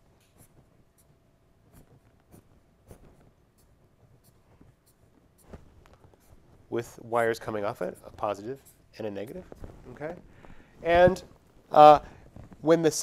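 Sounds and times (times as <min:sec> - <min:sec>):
marker scratching on paper: 0:00.0 - 0:09.8.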